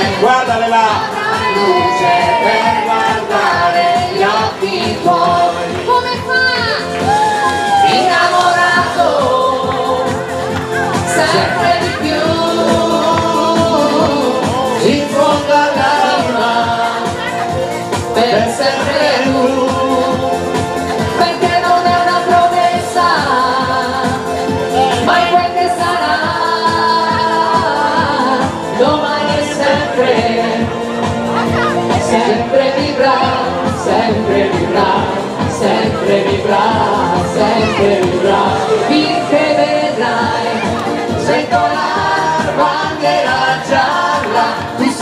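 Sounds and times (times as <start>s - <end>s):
woman singing into microphone: 0.0s - 30.8s, 31.4s - 45.0s
electronic backing track with beat: 0.0s - 45.0s
live pop dance music: 0.0s - 45.0s.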